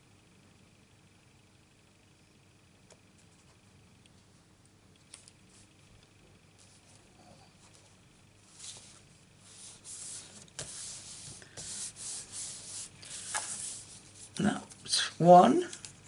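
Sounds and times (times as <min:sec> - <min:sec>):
paper sliding and rustling: 0:08.4 - 0:14.3.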